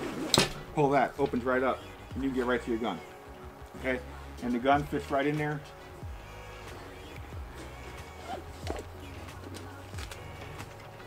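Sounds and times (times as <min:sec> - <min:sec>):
music with low bass line: 0:00.1 - 0:11.0.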